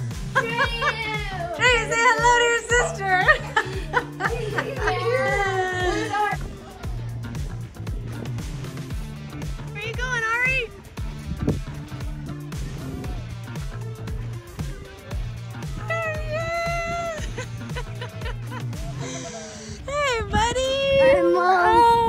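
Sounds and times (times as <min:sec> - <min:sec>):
music with beat and bass line: 0:00.0 - 0:22.0.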